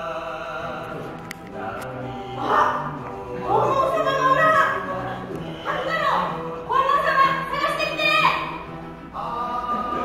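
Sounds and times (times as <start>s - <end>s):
music playing: 0.0s - 10.0s.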